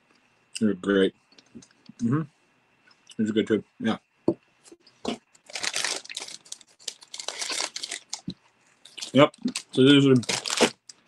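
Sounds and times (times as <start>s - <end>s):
candy packaging crinkling: 5.4s - 11.0s.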